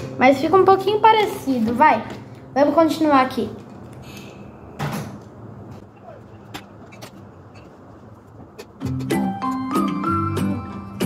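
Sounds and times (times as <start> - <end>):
background music: 0.0 - 3.6, 8.8 - 11.0.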